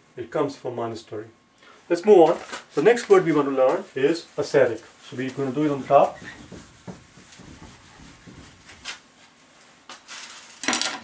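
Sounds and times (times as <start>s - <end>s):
eraser rubbing whiteboard: 5.1s - 9.0s.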